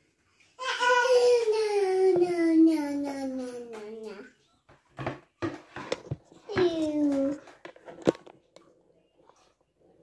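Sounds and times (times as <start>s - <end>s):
toddler vocal sound: 0.6s - 4.4s.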